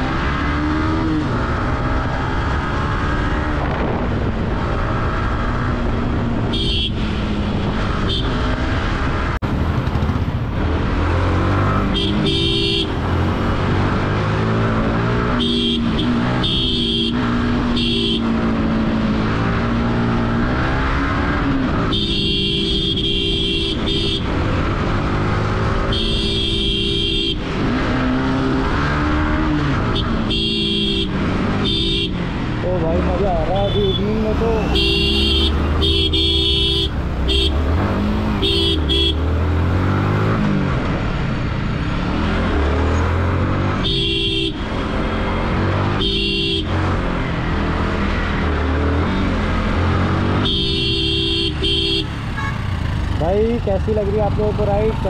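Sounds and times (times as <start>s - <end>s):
motorcycle engine revving: 0.0s - 55.0s
vehicle horns honking: 6.4s - 7.2s, 8.0s - 8.6s, 11.7s - 13.2s, 15.1s - 18.6s, 21.8s - 24.5s, 25.8s - 28.3s, 29.9s - 32.2s, 33.3s - 39.4s, 43.7s - 44.9s, 45.8s - 46.9s, 50.0s - 53.0s.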